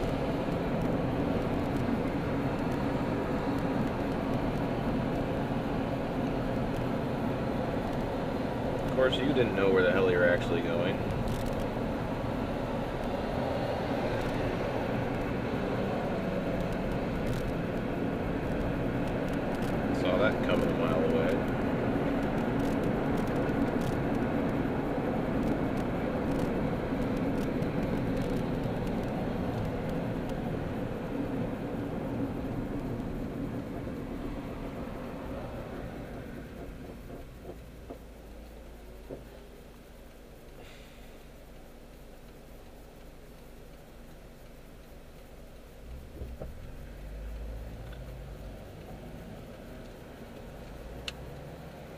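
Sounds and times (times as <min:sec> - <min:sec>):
car road and engine noise: 0:00.0 - 0:51.9.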